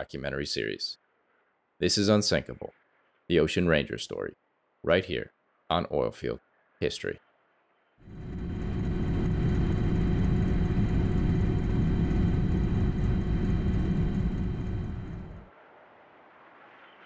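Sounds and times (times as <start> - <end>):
aircraft cabin drone: 8.0 - 15.5.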